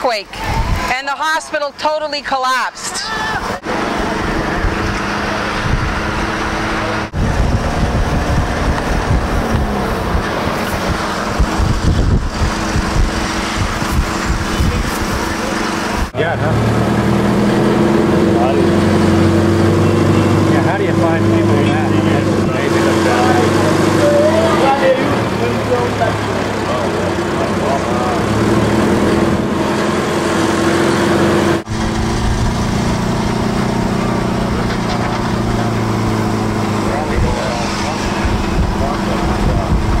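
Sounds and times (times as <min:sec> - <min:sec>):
road noise: 0:00.0 - 0:40.0
vehicle engine droning: 0:00.0 - 0:40.0
voices murmuring: 0:18.0 - 0:28.5, 0:34.0 - 0:40.0.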